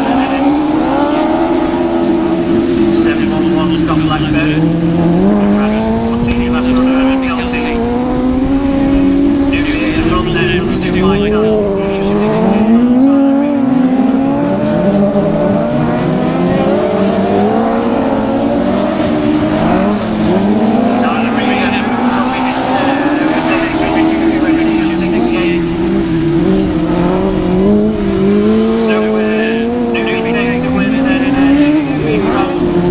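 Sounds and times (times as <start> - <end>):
racing buggy engines revving: 0.0 - 32.9.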